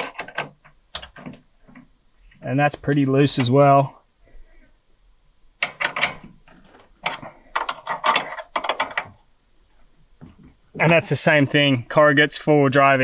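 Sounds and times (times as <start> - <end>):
insect chorus: 0.0 - 13.0.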